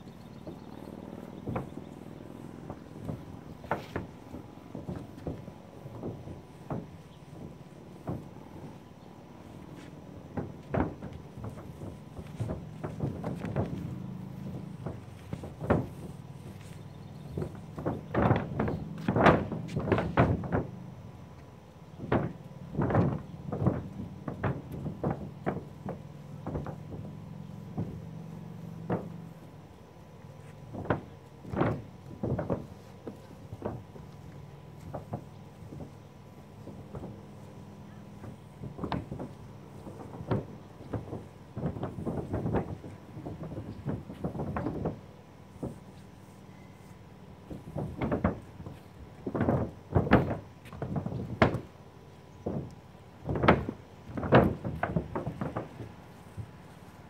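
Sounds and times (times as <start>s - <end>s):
low steady hum: 0.0s - 57.0s
paint roller taps and knocks: 0.4s - 20.8s, 22.0s - 29.5s, 30.4s - 51.8s, 52.4s - 57.0s.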